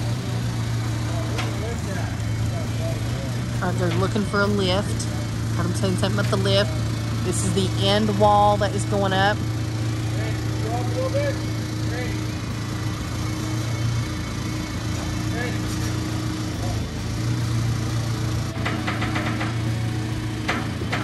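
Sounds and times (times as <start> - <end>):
diesel engine running: 0.0 - 21.0.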